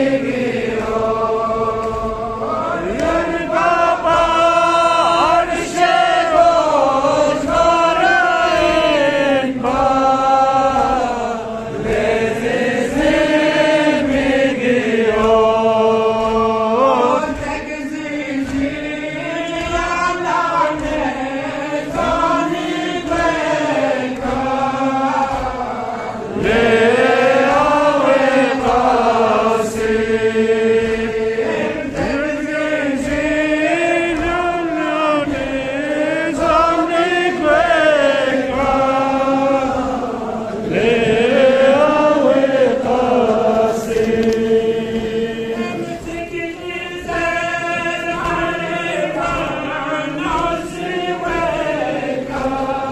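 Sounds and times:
man chanting a lament: 14.6 - 52.9.

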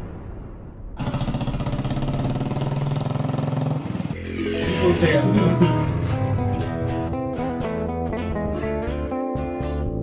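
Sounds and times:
motorcycle engine idling: 1.4 - 4.2.

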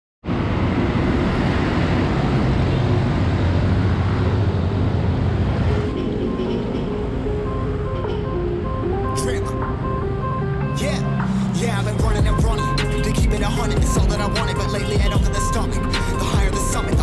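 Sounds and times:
road traffic rumble: 0.2 - 17.0
synth music: 5.3 - 17.0.

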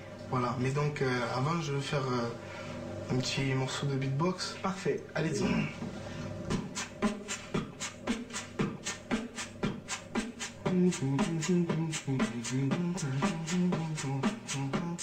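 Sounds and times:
hummed bass line: 5.3 - 15.0
beatboxing: 6.5 - 15.0.

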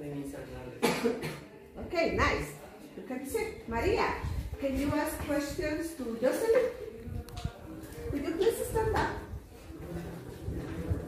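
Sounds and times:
person coughing: 0.8 - 1.5
low voices: 2.4 - 11.0.

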